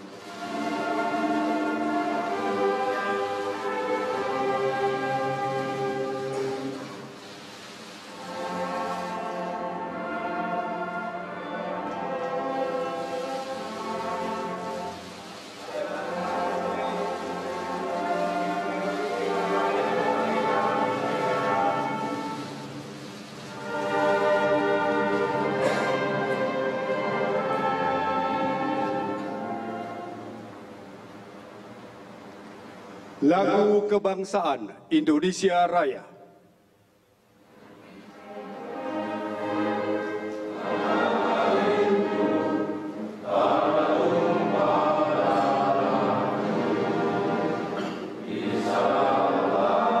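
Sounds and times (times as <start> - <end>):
slow orchestral music: 0.0 - 34.4, 36.6 - 50.0.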